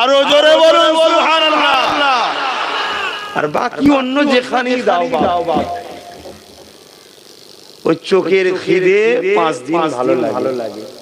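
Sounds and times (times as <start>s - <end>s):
man speaking: 3.4s - 6.1s, 7.8s - 11.0s.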